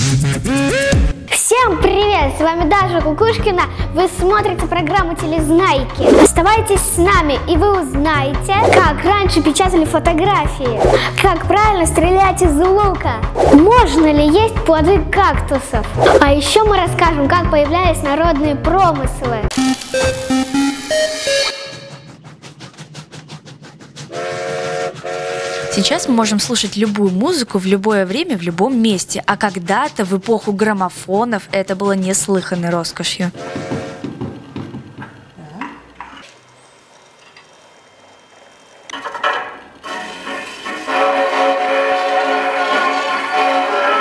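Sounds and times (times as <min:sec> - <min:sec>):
gramophone playing thin music: 0:19.5 - 0:22.1, 0:39.8 - 0:44.0
train horn chord: 0:24.1 - 0:26.3, 0:33.4 - 0:34.1, 0:39.8 - 0:44.0.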